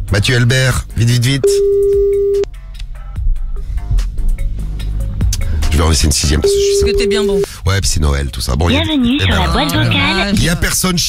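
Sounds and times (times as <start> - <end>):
background music with steady beat: 0.0 - 11.0
telephone ringback tone: 1.4 - 2.4, 6.4 - 7.4.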